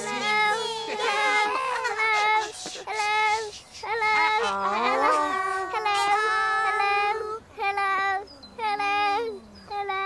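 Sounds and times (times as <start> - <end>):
high childlike voices singing: 0.0 - 10.0.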